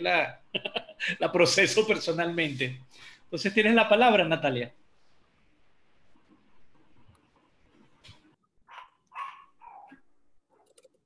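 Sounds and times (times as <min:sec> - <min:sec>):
dog barking: 0:08.7 - 0:10.0.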